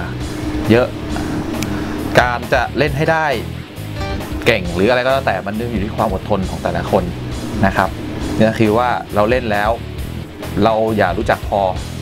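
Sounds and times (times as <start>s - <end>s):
background music low notes: 0.0s - 12.0s
man speaking: 0.7s - 1.3s, 2.1s - 3.5s, 4.3s - 9.8s, 10.6s - 11.8s.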